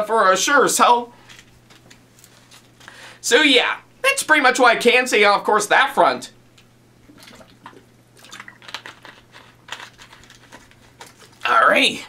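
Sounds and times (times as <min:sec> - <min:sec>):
man gulping water: 0:07.0 - 0:08.8
plastic bottle crinkling: 0:07.0 - 0:11.5.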